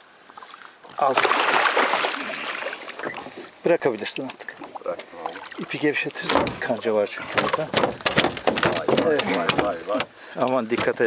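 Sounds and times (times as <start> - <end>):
water splashing: 0.3 - 10.3.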